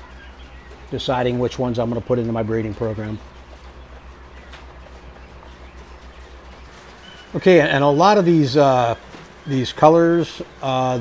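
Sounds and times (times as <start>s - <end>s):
pulsing low hum: 0.0s - 7.3s.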